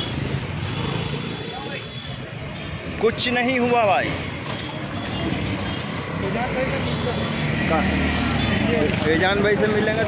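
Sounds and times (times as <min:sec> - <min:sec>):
traffic noise rumble: 0:00.0 - 0:10.0.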